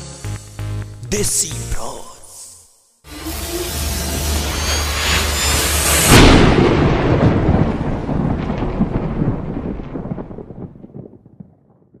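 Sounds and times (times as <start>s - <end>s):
music: 0.0s - 6.0s
deep cinematic boom: 4.2s - 10.8s
crackling rumble: 4.7s - 12.0s.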